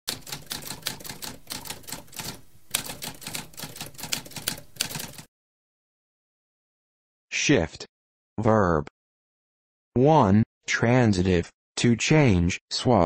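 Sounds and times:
typewriter typing: 0:00.1 - 0:05.3.

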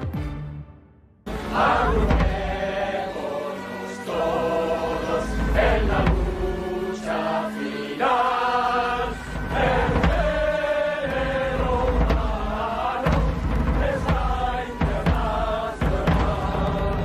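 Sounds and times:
crowd singing in unison: 0:01.3 - 0:17.0.

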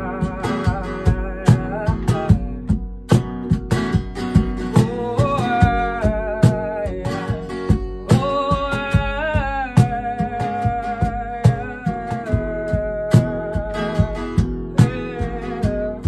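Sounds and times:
man singing: 0:00.0 - 0:03.2, 0:04.3 - 0:16.0
acoustic guitar strummed: 0:00.0 - 0:16.0
cajon slapped in steady beat: 0:00.0 - 0:16.0.

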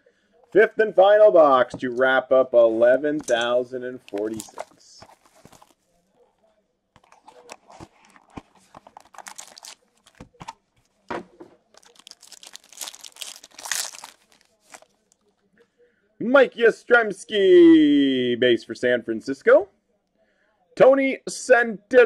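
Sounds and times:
plastic wrapper crinkling and tearing: 0:03.2 - 0:05.9, 0:07.0 - 0:11.0, 0:11.6 - 0:15.3.

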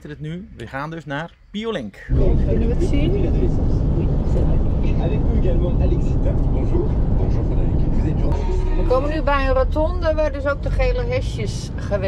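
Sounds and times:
engine and road rumble: 0:02.1 - 0:12.0.

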